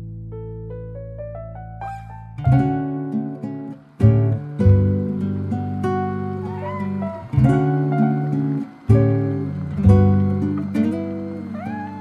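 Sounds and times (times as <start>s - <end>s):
acoustic guitar plucked chords: 1.9s - 12.0s
rising gliding guitar note: 1.9s - 12.0s.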